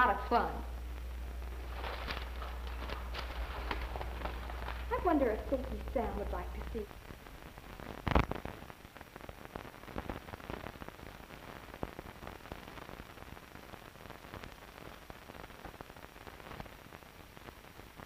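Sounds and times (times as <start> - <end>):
crackles and clicks: 0.0 - 18.0
steady hiss: 0.0 - 18.0.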